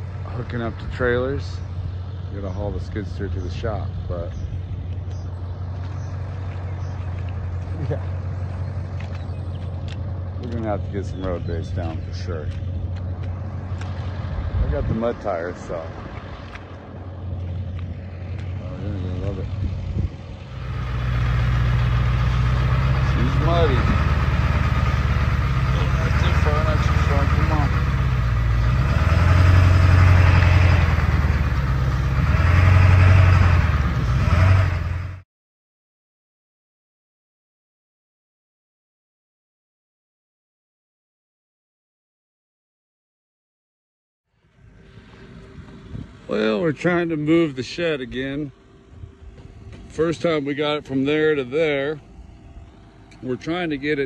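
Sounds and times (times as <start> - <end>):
engine idling: 0.0 - 35.2, 44.4 - 54.0.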